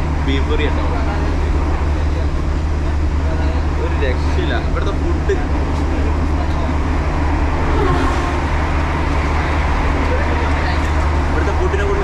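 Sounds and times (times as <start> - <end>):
faint voices talking: 0.0 - 12.0
vehicle engine rumble: 0.0 - 12.0.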